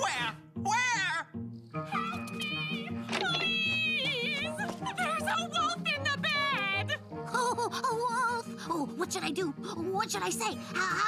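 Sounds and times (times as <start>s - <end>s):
cartoon soundtrack music: 0.0s - 11.0s.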